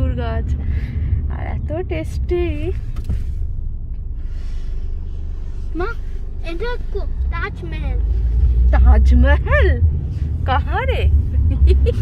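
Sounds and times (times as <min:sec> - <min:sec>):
car driving rumble: 0:00.0 - 0:12.0.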